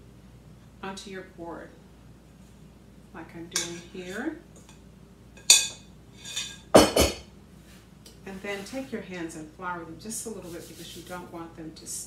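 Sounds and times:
glass bowl knocking: 6.8s - 7.2s.

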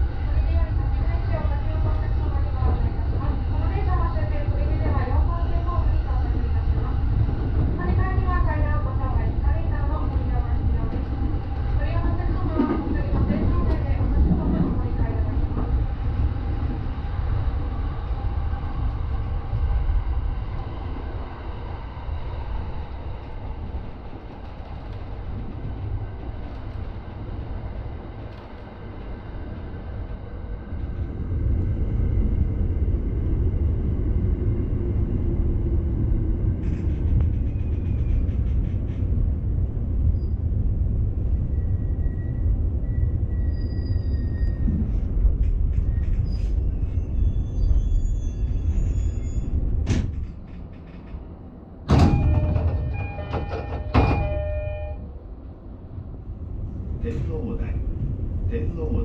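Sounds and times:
wheel-on-rail rumble: 0.0s - 59.0s
train motor whine: 51.9s - 55.0s.

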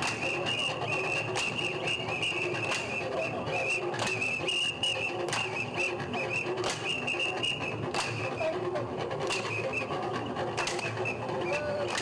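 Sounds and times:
high warbling whistle tone: 0.0s - 8.5s
sharp percussive beats: 0.0s - 12.0s.

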